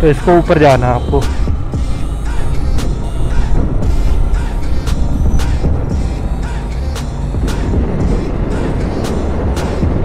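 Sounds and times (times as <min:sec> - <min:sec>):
background music: 0:00.0 - 0:10.0
motorcycle cruising: 0:00.0 - 0:10.0
wind rush: 0:01.2 - 0:10.0.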